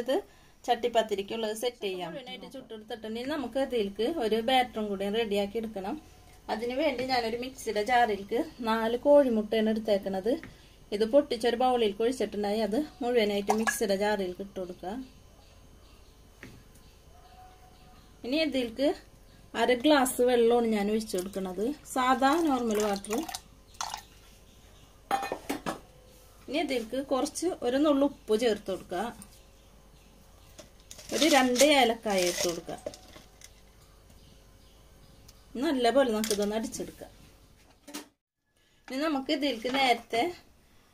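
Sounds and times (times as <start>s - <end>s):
woman speaking: 0.0s - 15.1s, 18.2s - 23.3s, 26.5s - 29.2s, 31.1s - 32.9s, 35.6s - 37.2s, 38.9s - 40.5s.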